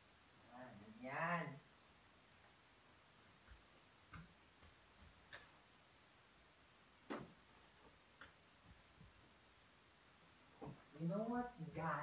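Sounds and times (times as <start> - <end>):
faint taps and ticks: 3.4 - 5.6, 7.1 - 9.2.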